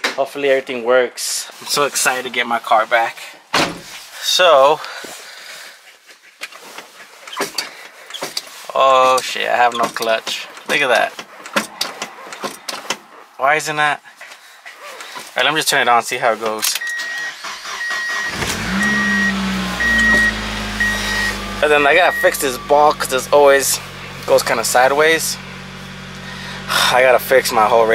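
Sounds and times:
car warning chime beeping: 16.8 - 23.3
car engine starting and idling: 16.8 - 27.9.

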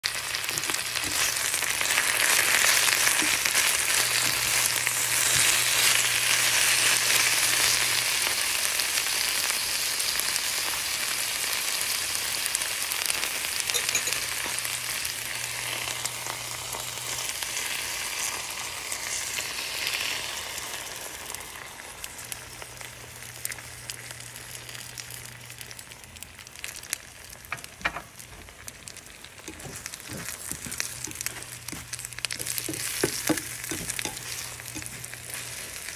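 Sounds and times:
vegetables sizzling in a frying pan: 0.0 - 35.9.

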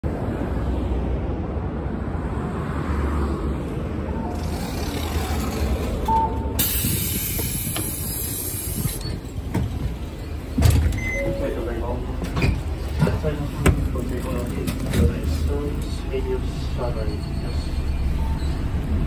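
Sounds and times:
bus engine idling: 4.1 - 19.0
pneumatic air hiss: 6.6 - 9.1.

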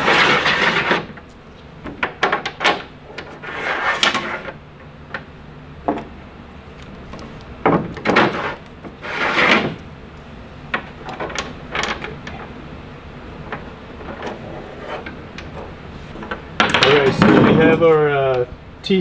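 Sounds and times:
hardware scraping along rail: 0.0 - 1.2, 3.0 - 4.6, 8.1 - 9.8, 13.5 - 17.9
handling noise: 0.0 - 18.4.

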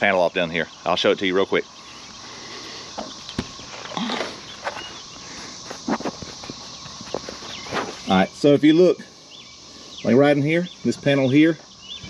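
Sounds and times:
steady background hiss: 0.0 - 12.0
footsteps: 3.0 - 8.1.

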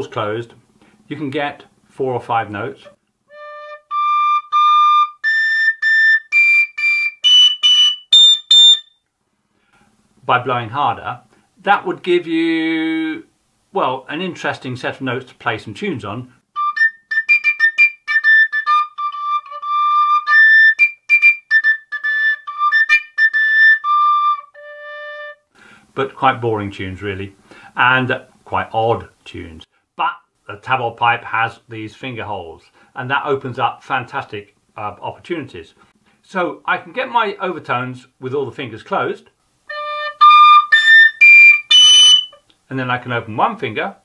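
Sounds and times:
tabor pipe playing tune: 3.3 - 8.9, 16.5 - 25.5, 39.7 - 42.4
flute whistle notes: 3.3 - 9.0, 16.6 - 25.5, 39.7 - 42.4.

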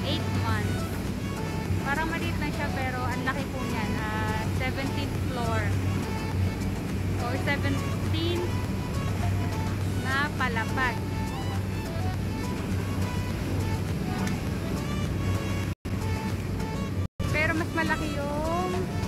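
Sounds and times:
boat engine droning: 0.0 - 19.0.

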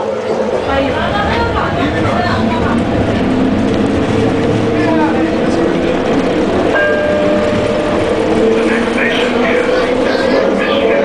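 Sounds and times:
train running rumble: 0.0 - 11.0.

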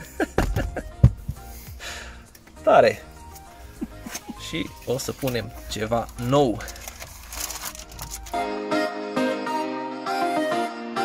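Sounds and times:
packaging crinkling: 5.0 - 8.4.

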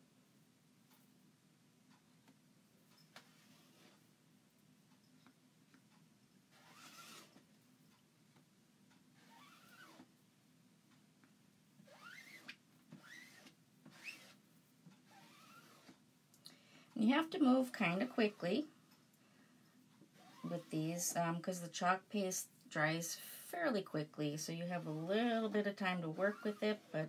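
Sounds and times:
squeegee scraping across silk screen: 15.1 - 16.0, 20.2 - 21.0, 24.6 - 27.0.

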